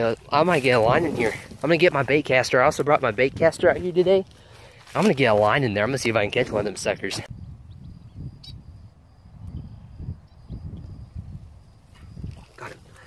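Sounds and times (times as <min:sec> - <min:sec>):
wind rumble on microphone: 0:00.0 - 0:04.2, 0:06.1 - 0:13.0.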